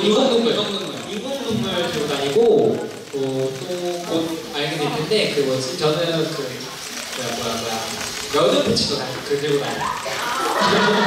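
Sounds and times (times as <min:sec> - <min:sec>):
man speaking into a microphone: 0:00.0 - 0:09.9.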